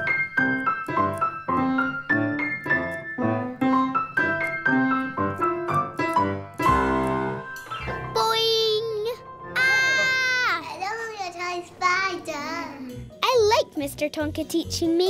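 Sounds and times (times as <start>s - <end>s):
piano playing single notes: 0.0s - 10.2s.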